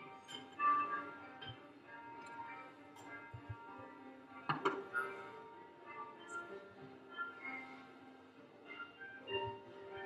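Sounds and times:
background music: 0:00.0 - 0:10.0
tea utensils knocking: 0:04.5 - 0:04.8.

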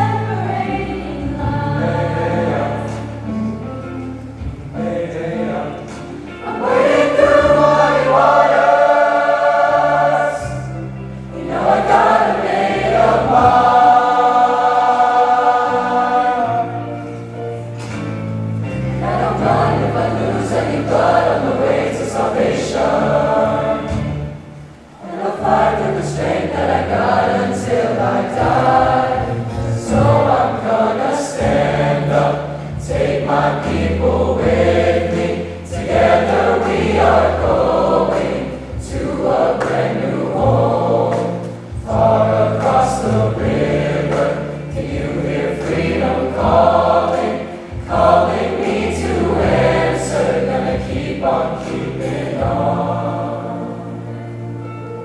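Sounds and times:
large choir singing in harmony: 0:00.0 - 0:55.0.

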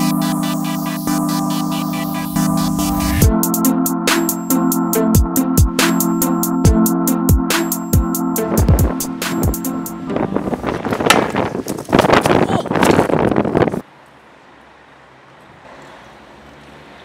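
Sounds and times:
electronic background music: 0:00.0 - 0:10.7
wind on microphone: 0:10.0 - 0:13.8.

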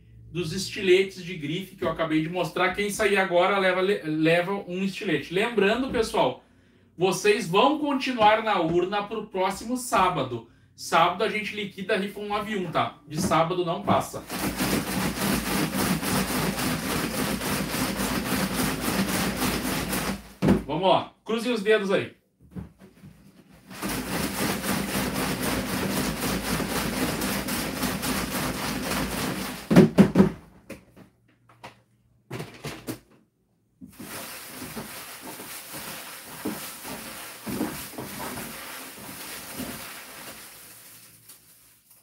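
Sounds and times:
loud knocks on plastic box: 0:18.9 - 0:20.7, 0:28.9 - 0:30.5
paper slips rustling: 0:33.9 - 0:42.0.

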